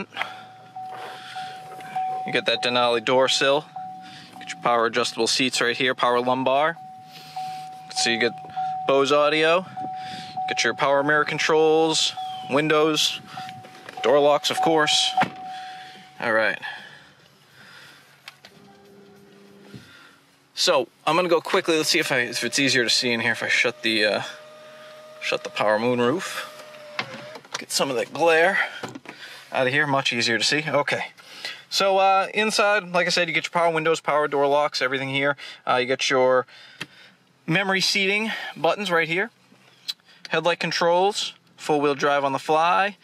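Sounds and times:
vehicle warning chime tone: 0.0s - 28.8s.

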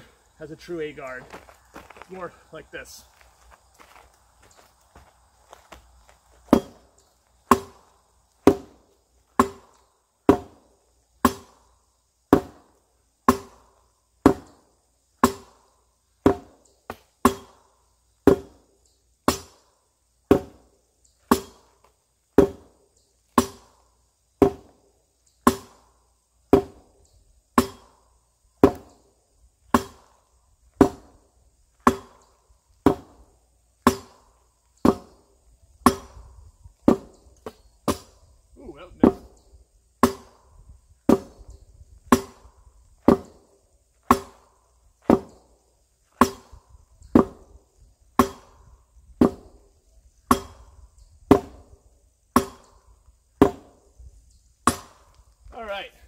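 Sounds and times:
sword striking tyre: 6.5s - 6.8s, 7.5s - 7.8s, 9.4s - 9.7s, 10.3s - 10.6s, 11.2s - 11.6s, 12.3s - 12.7s, 13.3s - 13.6s, 15.2s - 15.6s, 16.2s - 17.6s, 19.3s - 19.6s, 20.3s - 20.6s, 21.3s - 21.7s, 22.4s - 22.7s, 23.4s - 23.7s, 24.4s - 24.7s, 25.4s - 25.8s, 26.5s - 26.8s, 27.6s - 27.9s, 29.7s - 30.1s, 30.8s - 31.1s, 31.8s - 32.2s, 32.8s - 33.2s, 33.8s - 34.2s, 34.8s - 35.2s, 35.8s - 36.2s, 36.9s - 38.1s, 40.0s - 40.4s, 41.1s - 41.4s, 42.1s - 42.4s, 43.0s - 43.4s, 44.0s - 45.4s, 46.1s - 46.6s, 48.2s - 48.6s, 50.3s - 50.7s, 51.3s - 51.6s, 52.4s - 52.8s, 53.4s - 53.8s, 54.7s - 55.0s.

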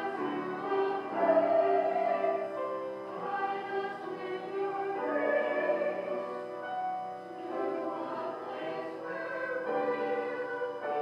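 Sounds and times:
keyboard accompaniment: 0.0s - 11.0s
voices singing a hymn: 0.0s - 11.0s.

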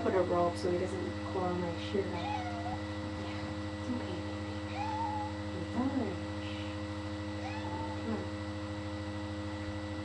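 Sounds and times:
electrical hum: 0.0s - 10.0s
cat meowing: 2.2s - 2.8s, 4.7s - 5.4s, 7.4s - 8.1s.

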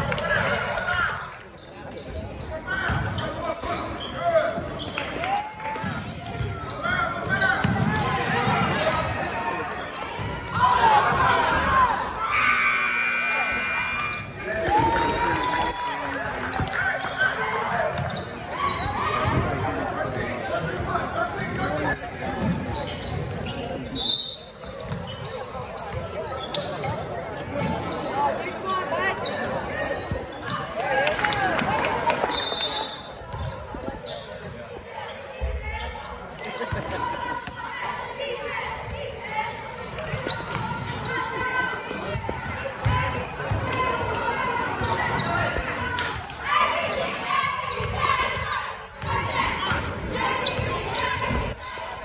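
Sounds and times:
people calling out: 12.3s - 14.8s.

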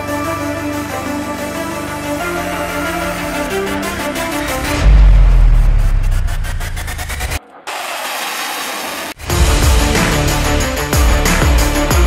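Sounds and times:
sudden deep rumble: 4.6s - 7.7s
jet fighter engine in flight: 6.0s - 9.4s.

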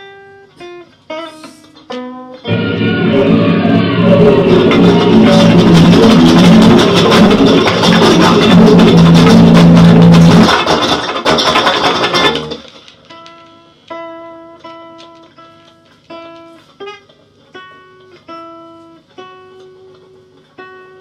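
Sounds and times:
clean electric guitar notes: 0.0s - 10.5s
loud dense wall of noise: 2.5s - 11.3s.

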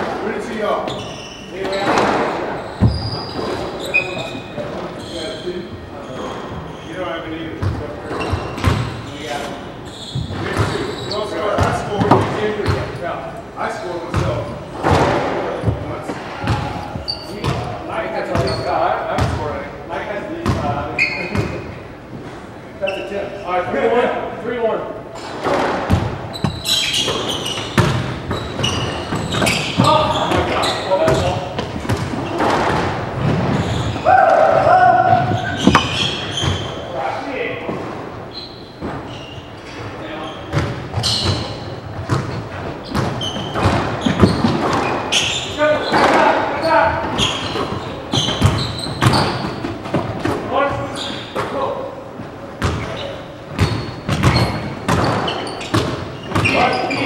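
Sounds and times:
squash ball hitting racquets and walls: 0.0s - 5.3s, 7.5s - 9.3s, 10.1s - 13.1s, 14.0s - 19.5s, 25.2s - 38.1s, 40.4s - 51.6s, 52.6s - 57.0s
sneakers squeaking on hardwood: 0.5s - 13.0s, 14.1s - 19.4s, 20.4s - 21.7s, 25.9s - 37.0s, 37.7s - 51.6s, 52.6s - 57.0s.

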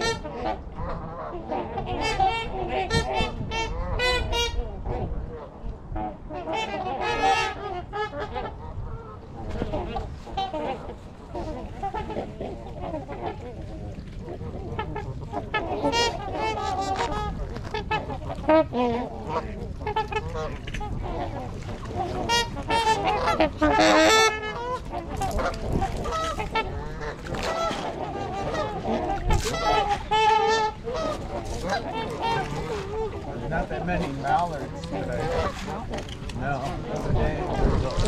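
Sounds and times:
geese and swans honking: 0.0s - 38.0s.

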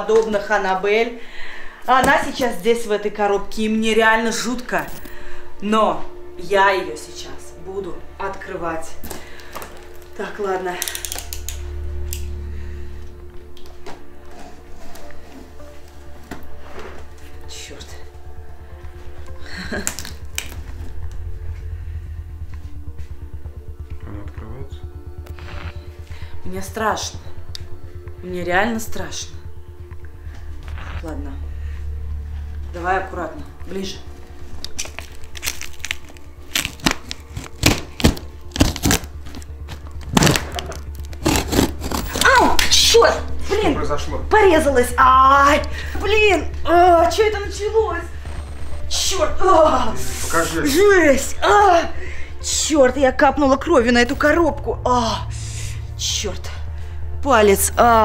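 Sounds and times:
low drone music: 0.0s - 58.0s
steady low hum: 0.0s - 58.0s
knife cutting packing tape: 40.2s - 42.3s.

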